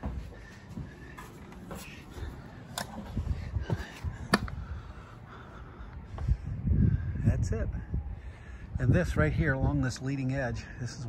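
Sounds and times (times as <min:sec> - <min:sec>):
footsteps on ladder: 0:00.0 - 0:04.6.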